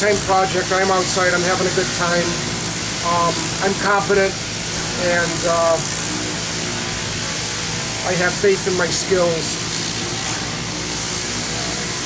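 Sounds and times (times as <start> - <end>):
electric buffer running: 0.0 - 12.0.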